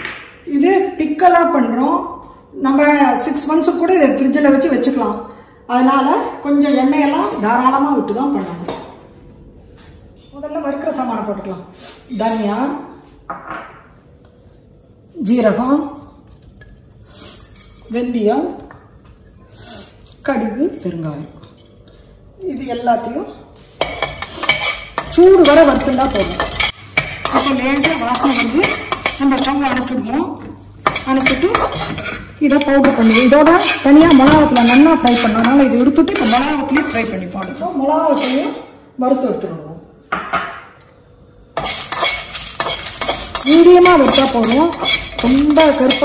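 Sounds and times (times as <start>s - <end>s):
metal spatula scraping steel pan: 23.8s - 30.0s, 30.8s - 38.7s, 41.6s - 46.0s.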